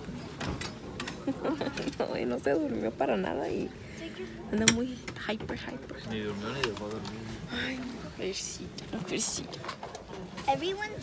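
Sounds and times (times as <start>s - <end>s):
people talking quietly: 0.9s - 11.0s.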